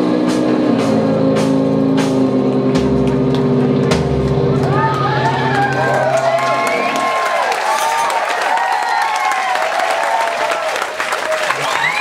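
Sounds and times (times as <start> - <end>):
audience whooping and cheering: 3.6 - 12.0.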